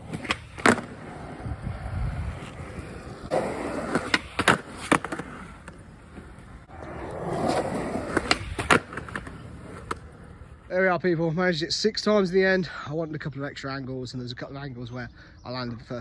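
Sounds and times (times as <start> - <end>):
skateboard clacking on concrete: 0.0 - 1.4, 2.3 - 6.4, 7.0 - 10.4
skateboard wheels rolling on concrete: 0.0 - 12.6.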